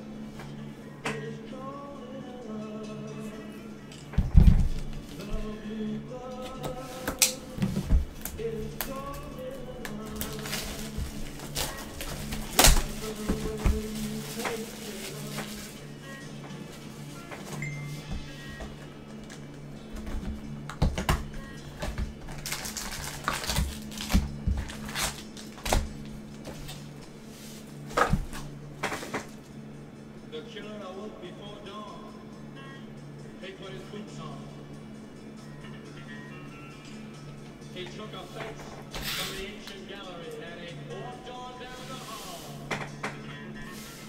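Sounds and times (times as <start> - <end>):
background music: 0.0 - 44.0.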